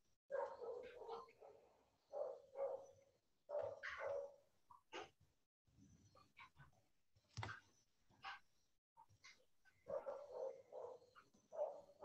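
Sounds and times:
dog barking over video call: 0.3s - 5.2s, 9.2s - 12.0s.

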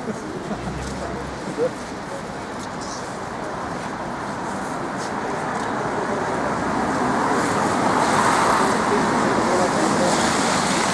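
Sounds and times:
faint voices: 0.0s - 7.5s
tyres hissing on wet road: 0.1s - 10.9s.

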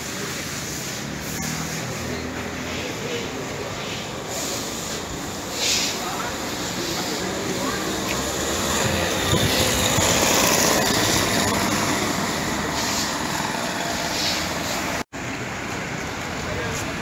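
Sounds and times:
street background noise: 0.0s - 17.0s
moped engine passing: 0.1s - 17.0s.

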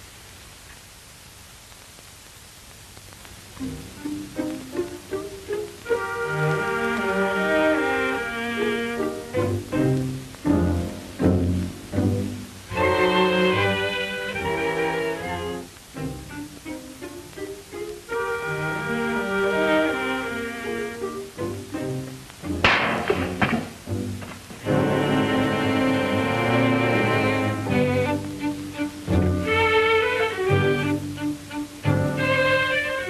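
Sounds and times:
orchestral bowed strings: 3.6s - 33.0s.

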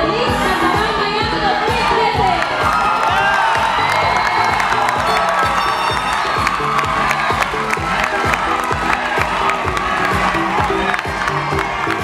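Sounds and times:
dance music with steady beat: 0.0s - 12.0s
audience cheering and shouting: 0.3s - 12.0s.

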